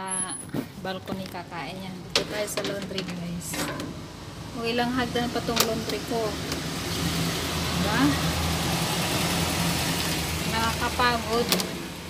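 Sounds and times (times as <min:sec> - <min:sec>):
noisy wash: 0:01.4 - 0:12.0.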